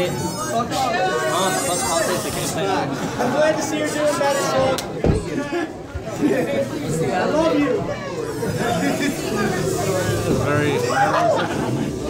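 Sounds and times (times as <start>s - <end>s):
background chatter: 0.0s - 12.0s
people talking: 0.0s - 12.0s.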